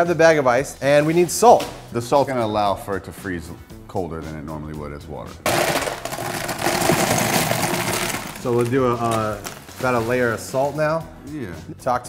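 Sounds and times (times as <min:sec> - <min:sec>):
ice cubes clattering into bucket: 0:05.5 - 0:10.6.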